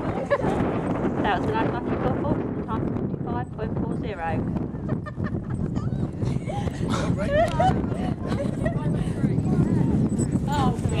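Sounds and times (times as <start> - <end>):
people talking: 1.2 - 4.4, 6.5 - 11.0.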